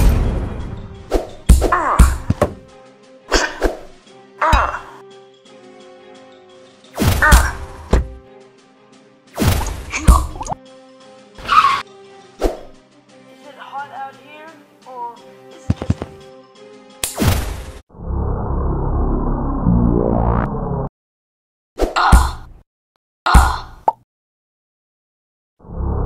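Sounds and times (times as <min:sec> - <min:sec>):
punch sound effects: 0:00.0 - 0:02.5, 0:09.4 - 0:10.4
background music: 0:00.0 - 0:17.8
short sharp snap: 0:17.0 - 0:17.2.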